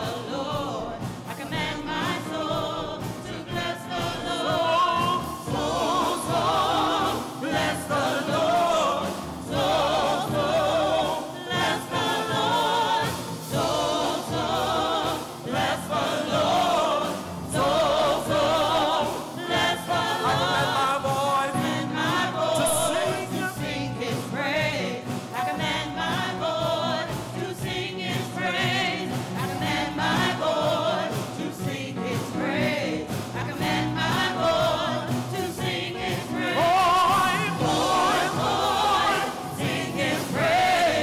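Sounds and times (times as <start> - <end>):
group singing gospel: 0.0 - 41.0
keyboard accompaniment: 0.0 - 41.0.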